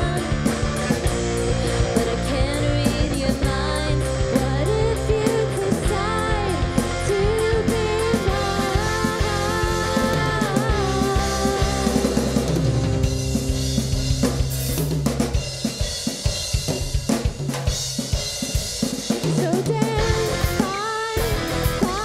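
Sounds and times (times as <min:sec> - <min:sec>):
electric guitar: 0:00.0 - 0:14.8, 0:19.4 - 0:22.0
bass guitar: 0:00.0 - 0:17.2, 0:19.8 - 0:22.0
drum kit: 0:00.0 - 0:22.0.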